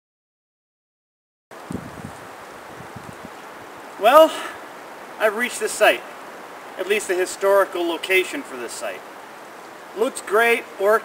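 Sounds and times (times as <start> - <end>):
wind buffeting microphone: 1.5 - 3.8
wind: 1.5 - 11.0.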